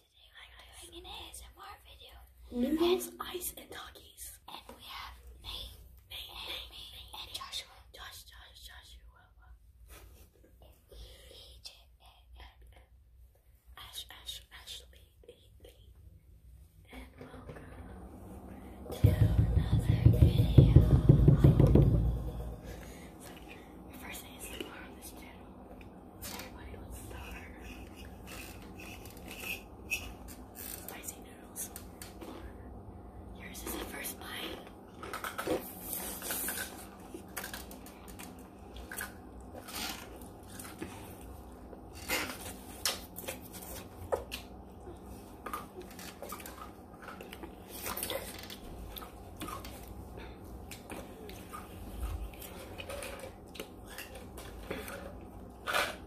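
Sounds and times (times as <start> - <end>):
soft whispering: 0.0 - 16.1, 16.8 - 21.0, 22.3 - 34.9
low steady hum: 0.0 - 56.0
close low rubbing noise: 17.0 - 32.6.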